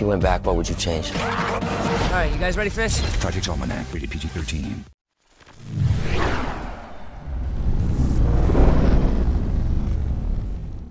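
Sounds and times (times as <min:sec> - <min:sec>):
whoosh: 0:05.6 - 0:10.9
deep rumbling boom: 0:06.9 - 0:10.9.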